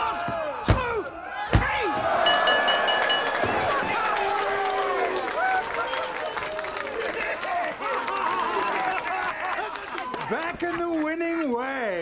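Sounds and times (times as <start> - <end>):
bell rung rapidly: 2.3 - 3.7.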